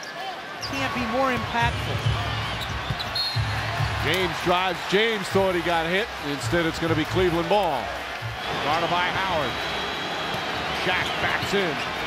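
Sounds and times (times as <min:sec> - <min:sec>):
low music: 0:00.9 - 0:09.2.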